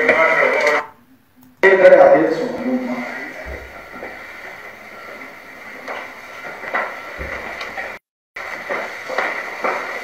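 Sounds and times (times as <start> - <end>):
speech from laptop speaker: 1.6 - 6.3.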